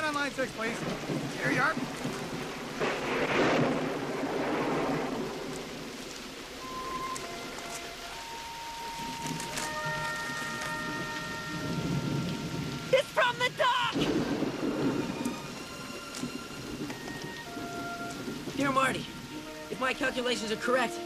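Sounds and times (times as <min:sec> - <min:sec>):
rumble of thunder: 0:00.0 - 0:07.6, 0:09.0 - 0:13.0, 0:13.8 - 0:19.7
heavy rain falling: 0:00.0 - 0:21.0
soft sustained music chord: 0:06.6 - 0:12.9.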